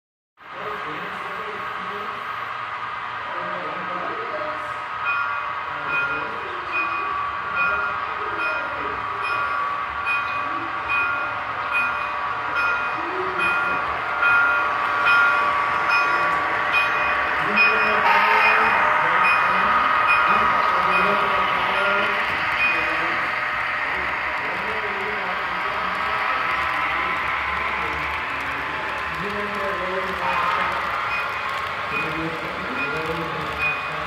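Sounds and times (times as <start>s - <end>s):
model train running: 0.4s - 34.0s
electronic bell ringing: 5.0s - 23.3s, 29.8s - 34.0s.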